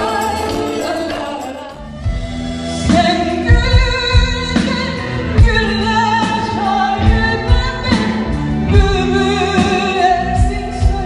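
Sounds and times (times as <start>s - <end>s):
live band playing: 0.0s - 11.0s
woman singing with vibrato: 0.0s - 11.0s.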